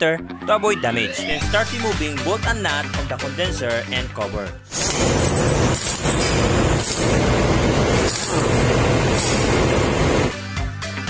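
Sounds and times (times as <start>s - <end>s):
background music: 0.0s - 7.8s, 8.6s - 11.0s
engine room machinery noise: 4.8s - 10.3s.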